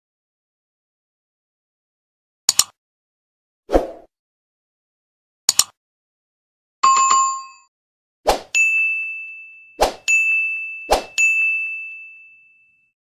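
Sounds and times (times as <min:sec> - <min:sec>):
bright bell ding: 0:06.8 - 0:07.7, 0:08.6 - 0:12.9
short chime: 0:08.6 - 0:12.9.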